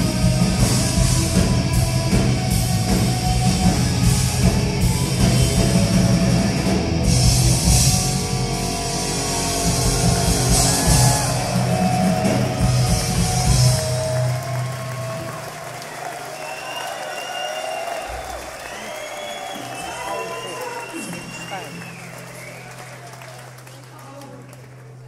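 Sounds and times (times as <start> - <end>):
heavy metal band playing live: 0.0 - 15.4
crowd cheering and whistling: 0.0 - 24.6.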